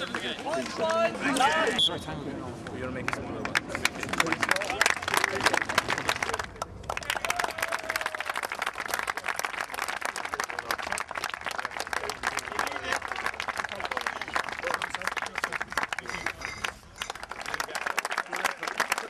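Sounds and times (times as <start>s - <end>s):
crowd applauding: 0.0s - 1.6s, 3.1s - 19.0s.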